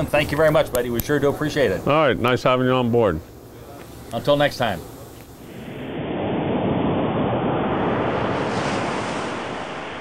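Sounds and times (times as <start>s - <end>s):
ocean surf rushing: 5.4s - 10.0s.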